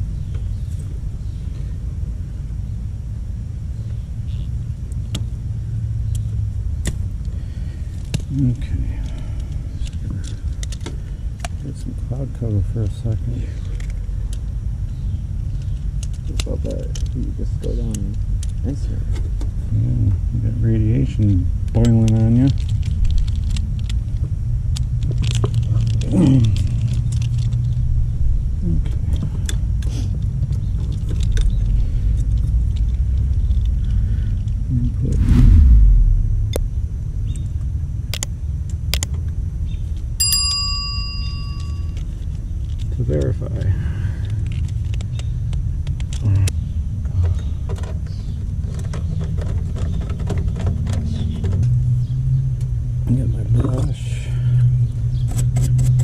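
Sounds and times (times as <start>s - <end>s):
low rumble: 34.9s - 38.2s
low thump: 35.1s - 37.0s
bell-like chime: 40.2s - 42.0s.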